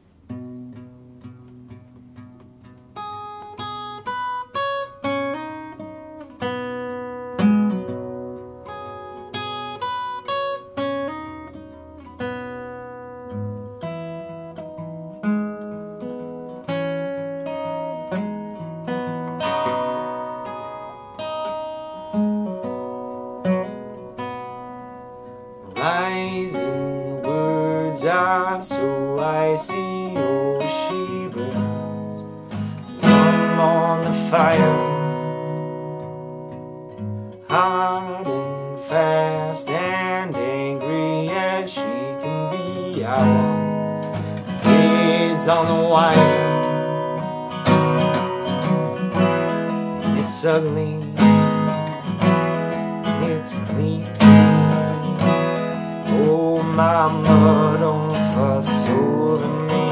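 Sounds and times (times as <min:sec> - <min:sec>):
fingerpicked acoustic guitar: 0:00.0 - 0:59.9
man singing: 0:25.6 - 0:35.7, 0:37.4 - 0:47.2, 0:47.8 - 0:59.9.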